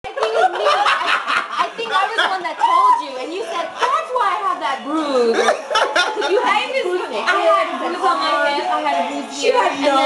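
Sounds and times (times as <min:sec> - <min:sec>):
overlapping talk: 0:00.0 - 0:10.0
group of people laughing: 0:00.1 - 0:04.2, 0:05.2 - 0:06.7.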